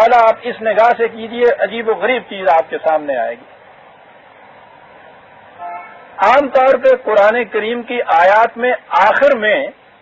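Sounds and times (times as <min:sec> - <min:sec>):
tape hiss: 0:00.0 - 0:10.0
short horn-like tone: 0:05.6 - 0:06.0.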